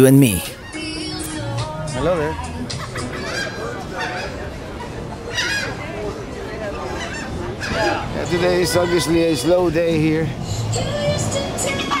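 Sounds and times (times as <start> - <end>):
people in open air: 0.0 - 12.0.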